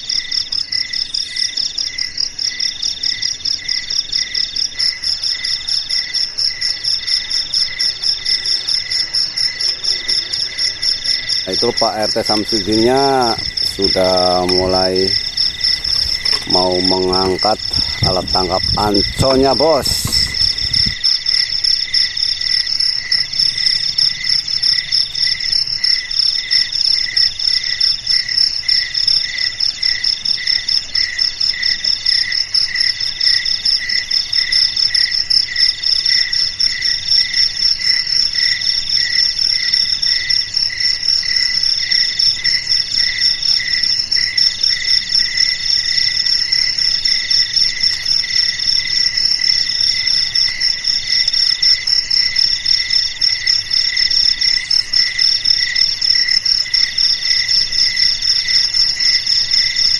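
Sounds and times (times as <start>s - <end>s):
overlapping insect trills: 0.0s - 59.9s
insect calling in bursts: 5.0s - 21.6s.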